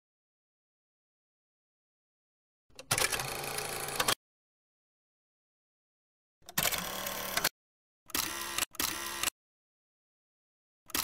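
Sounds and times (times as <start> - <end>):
camera shutter and winder whirring: 6.5 - 7.5, 8.1 - 9.4.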